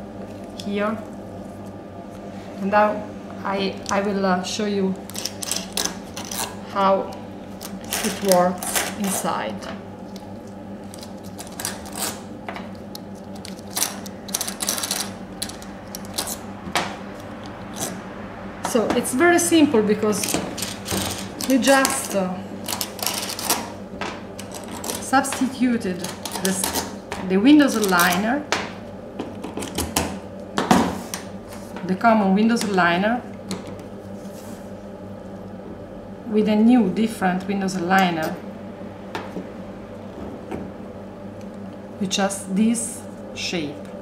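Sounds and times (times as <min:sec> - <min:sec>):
low steady hum: 0:00.0 - 0:44.0
small metal parts clicking: 0:13.4 - 0:16.4.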